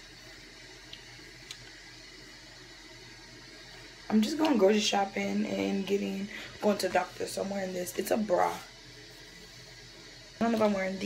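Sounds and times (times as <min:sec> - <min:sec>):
running toilet hiss: 0:00.0 - 0:11.0.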